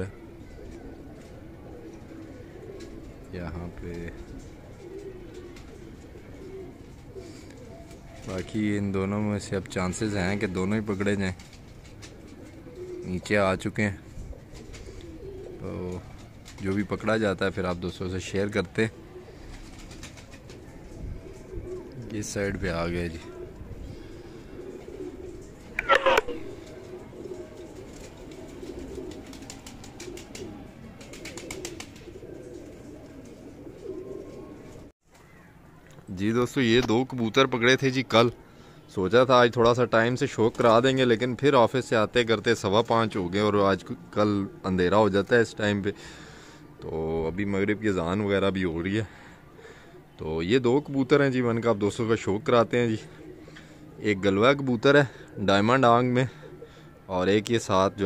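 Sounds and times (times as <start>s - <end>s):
pigeons cooing: 0.0s - 35.6s, 36.4s - 58.0s.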